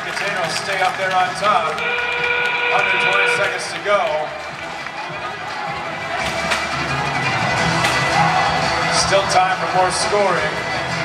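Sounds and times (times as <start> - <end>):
crowd noise: 0.0 - 11.0
music over public address: 0.0 - 11.0.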